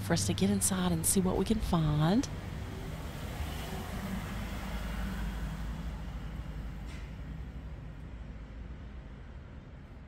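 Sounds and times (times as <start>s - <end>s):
road traffic rumble: 0.0s - 8.2s.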